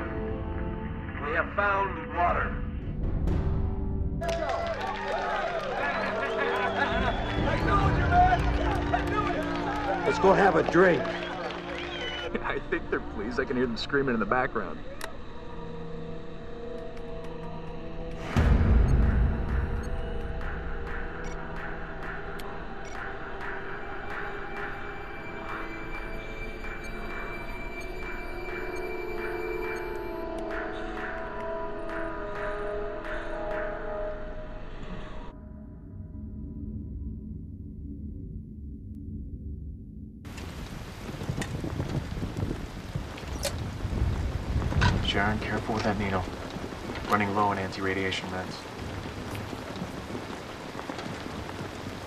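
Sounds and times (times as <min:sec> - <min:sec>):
ominous soundtrack music: 0:00.0 - 0:52.0
low rumbling drone: 0:34.4 - 0:40.3
rain hissing: 0:40.3 - 0:52.0.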